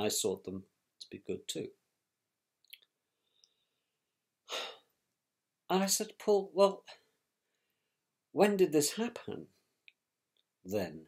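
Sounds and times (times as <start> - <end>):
man sighing breath: 4.5 - 4.9.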